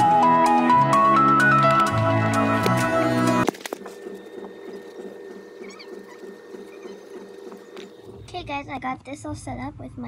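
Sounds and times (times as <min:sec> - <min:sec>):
marker squeaks: 0:04.7 - 0:08.0.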